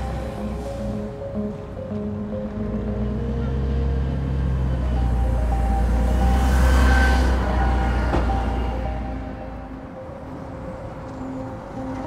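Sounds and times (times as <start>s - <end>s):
background music: 0.0s - 12.0s
bus passing: 0.0s - 12.0s.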